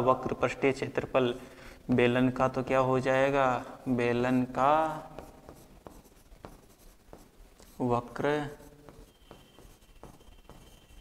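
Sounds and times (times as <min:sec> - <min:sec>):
pen scratching on screen: 0:04.8 - 0:11.0.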